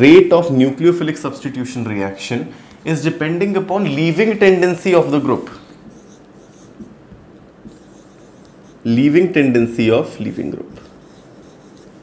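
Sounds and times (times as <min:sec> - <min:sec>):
marker pen writing on whiteboard: 0:05.1 - 0:09.4, 0:10.5 - 0:12.0.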